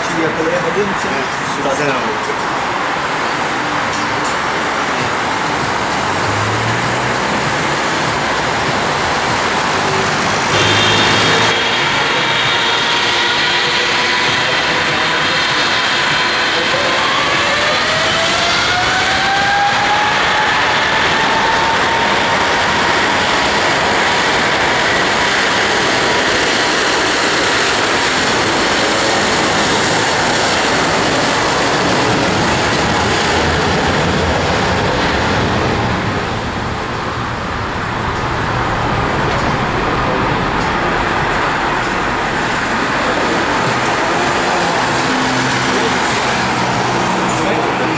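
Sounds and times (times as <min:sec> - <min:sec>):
jet engines spooling up: 0:00.0 - 0:47.9
jet taking off roar: 0:00.0 - 0:47.9.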